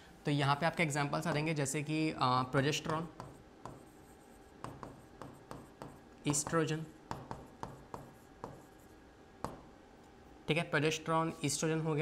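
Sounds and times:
scratchy writing strokes on board: 0:02.8 - 0:09.6.

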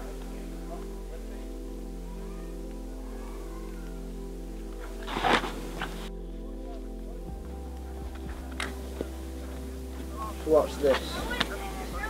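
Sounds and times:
sustained chords music: 0:00.0 - 0:12.0.

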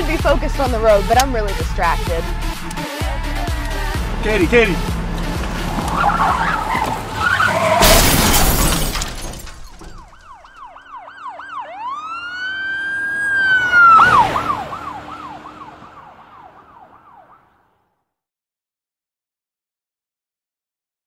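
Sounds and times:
emergency vehicle siren: 0:02.1 - 0:08.0, 0:09.7 - 0:17.9
car crash impact: 0:05.0 - 0:10.7
glass shattering: 0:07.4 - 0:10.5.

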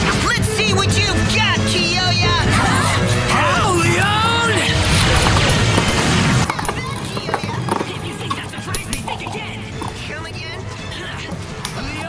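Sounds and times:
background music: 0:00.0 - 0:12.0
loud rushing noise: 0:03.4 - 0:06.5.

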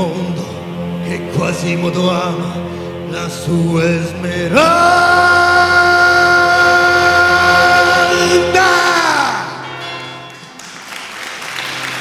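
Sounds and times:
musical theatre backing music: 0:00.0 - 0:12.0
person singing a long note: 0:03.6 - 0:09.7.

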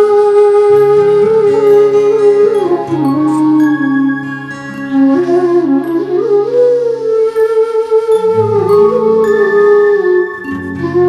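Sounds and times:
slow sad flute melody: 0:00.0 - 0:11.0.

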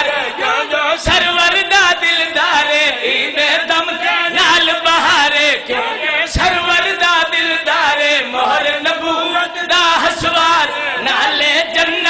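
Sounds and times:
men chanting into microphone: 0:00.0 - 0:12.0.

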